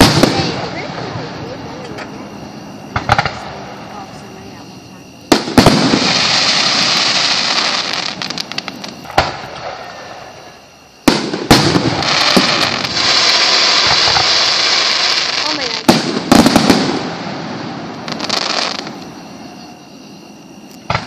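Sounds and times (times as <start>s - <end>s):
firework bangs: 0.0s - 19.8s, 20.8s - 21.0s
fireworks hissing and crackling: 0.0s - 21.0s.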